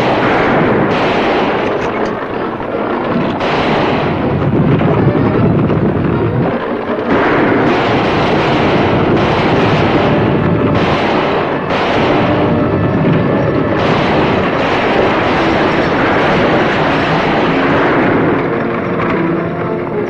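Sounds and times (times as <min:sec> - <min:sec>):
coach wheels on dirt road: 0:00.0 - 0:07.7
galloping horses: 0:00.0 - 0:20.0.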